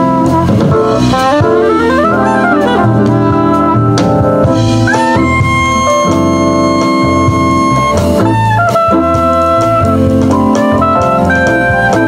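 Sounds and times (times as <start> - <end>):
soprano saxophone: 0.0 - 4.0, 4.8 - 12.0
jazz combo backing: 0.0 - 12.0.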